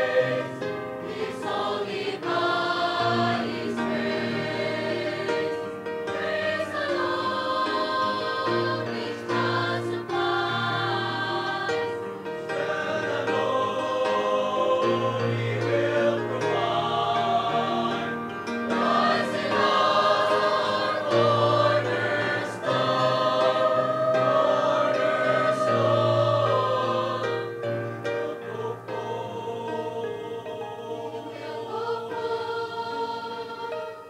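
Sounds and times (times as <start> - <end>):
mixed choir singing a hymn: 0.0 - 34.0.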